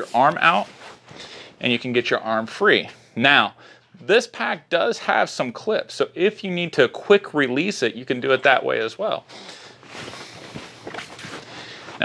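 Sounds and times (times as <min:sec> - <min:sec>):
clothing rustling: 0:00.0 - 0:01.3, 0:09.6 - 0:12.0.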